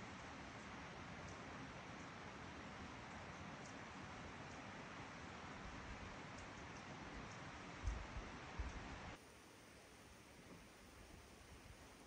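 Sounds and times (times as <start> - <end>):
faint outdoor ambience hiss: 0.0 - 12.0.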